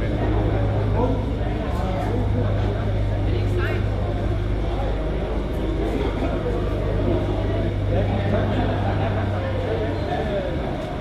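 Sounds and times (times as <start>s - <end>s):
model tractor engine droning: 0.0s - 11.0s
people chattering: 0.0s - 11.0s.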